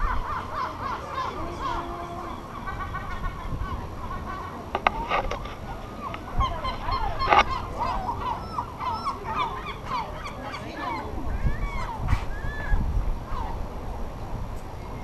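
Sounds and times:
gulls calling: 0.0 - 13.9.

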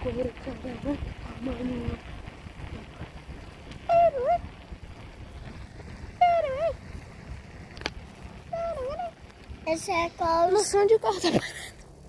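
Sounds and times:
wind and road noise: 0.0 - 12.0.

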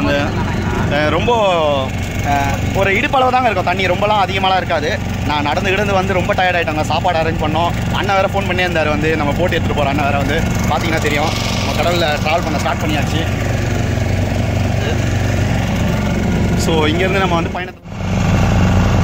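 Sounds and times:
men talking: 0.0 - 17.8
boat motor droning: 0.0 - 19.0.

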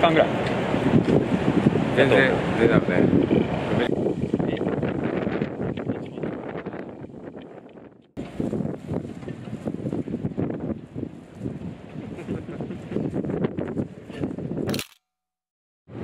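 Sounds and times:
wind buffeting microphone: 0.0 - 14.8.

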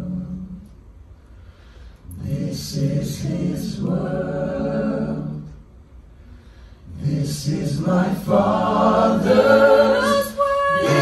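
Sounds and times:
choir singing a hymn: 2.2 - 5.6, 6.9 - 11.0.

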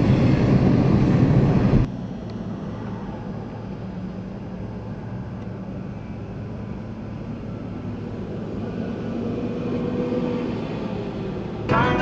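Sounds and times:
diesel locomotives droning: 0.0 - 12.0.

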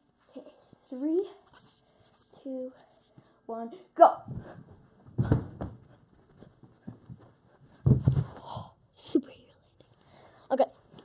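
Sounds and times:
heavy landing thuds: 4.2 - 8.5
footfalls of person running: 4.3 - 8.5.

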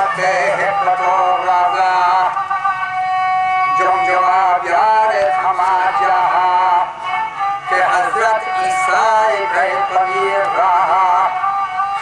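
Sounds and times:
man singing long wavering note: 0.0 - 12.0.

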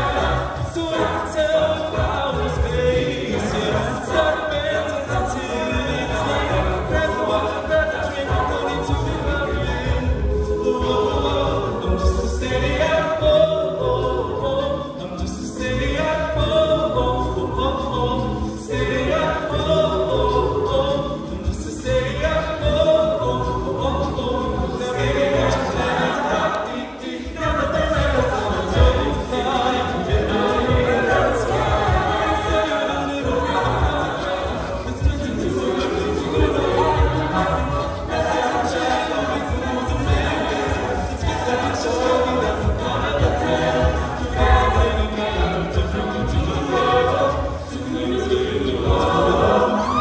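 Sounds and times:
a cappella group singing in harmony: 0.0 - 50.0.

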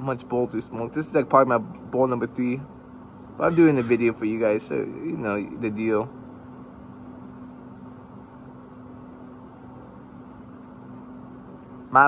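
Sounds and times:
fan machine humming: 0.0 - 12.0.

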